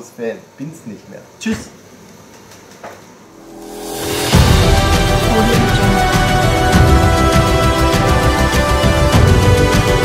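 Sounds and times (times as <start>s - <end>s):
rising whoosh: 3.3s - 7.7s
animated intro theme music: 3.3s - 10.0s.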